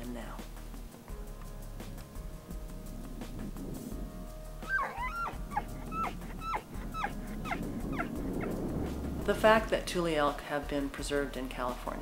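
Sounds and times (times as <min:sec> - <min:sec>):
elk bugling squeals: 0:04.6 - 0:08.6.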